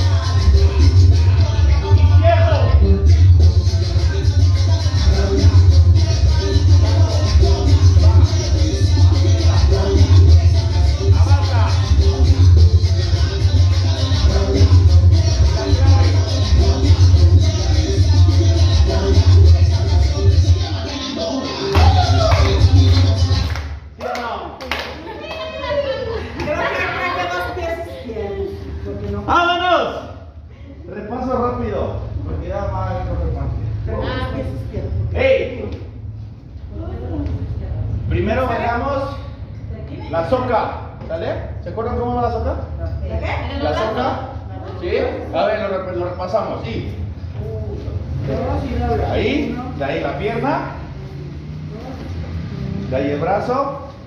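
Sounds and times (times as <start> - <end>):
latin dance music: 0.0 - 54.0
people talking in large room: 0.0 - 54.0
hand claps: 21.7 - 25.0.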